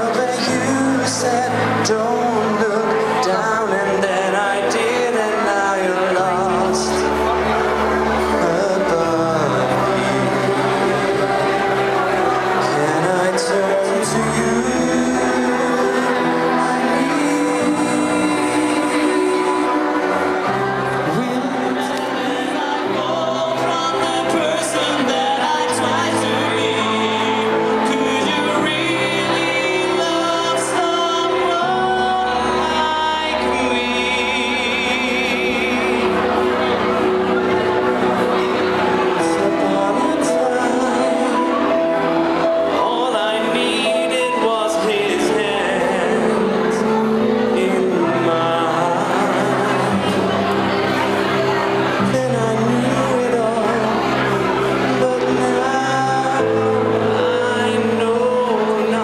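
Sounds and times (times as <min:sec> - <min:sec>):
person singing into microphone: 0:00.0 - 0:59.0.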